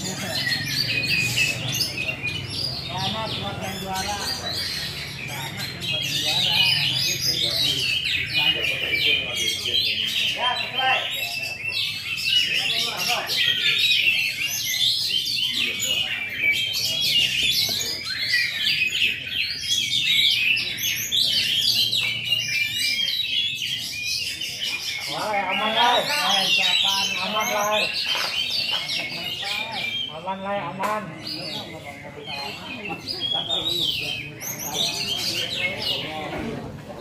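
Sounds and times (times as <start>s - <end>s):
caged songbirds chirping and trilling: 0.0s - 37.0s.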